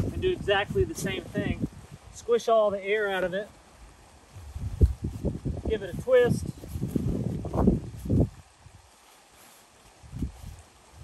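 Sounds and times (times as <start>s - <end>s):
fabric rustling: 4.0s - 11.0s.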